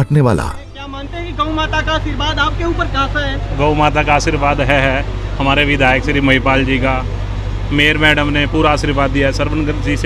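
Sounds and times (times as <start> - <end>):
man speaking into a microphone: 0.0 - 7.0
steady low hum: 0.2 - 10.0.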